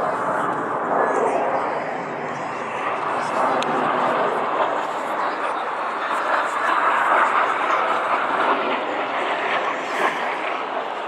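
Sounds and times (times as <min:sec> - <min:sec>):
jet aircraft rushing overhead: 0:00.0 - 0:11.0.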